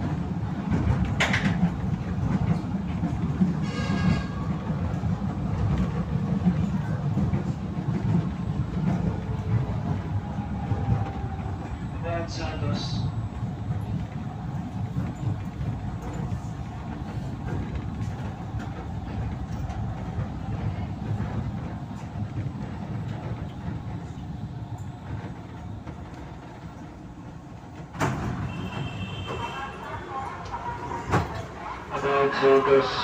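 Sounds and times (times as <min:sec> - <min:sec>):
train wheels rumbling on track: 0:00.0 - 0:33.0.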